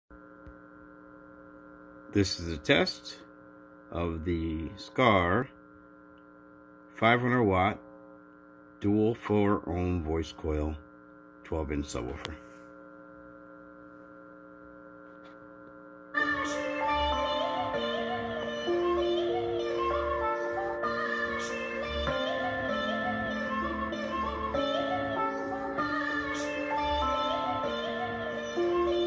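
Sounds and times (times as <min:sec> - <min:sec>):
electrical mains hum: 0:00.1 - 0:29.0.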